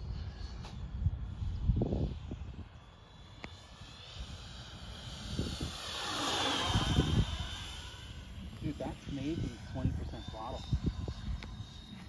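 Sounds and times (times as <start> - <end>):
electric ducted fans whining: 0.0 - 12.0.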